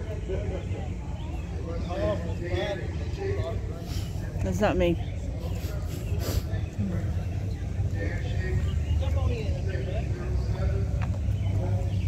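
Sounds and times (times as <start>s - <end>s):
distant people talking: 0.0s - 12.0s.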